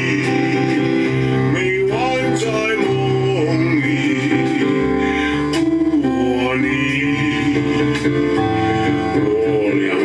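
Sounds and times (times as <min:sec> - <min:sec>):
instrumental accompaniment: 0:00.0 - 0:10.0
person singing love song: 0:00.0 - 0:10.0.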